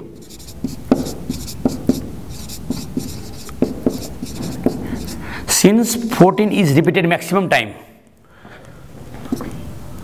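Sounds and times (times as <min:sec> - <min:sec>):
pen strokes and taps on board: 0:00.3 - 0:05.2.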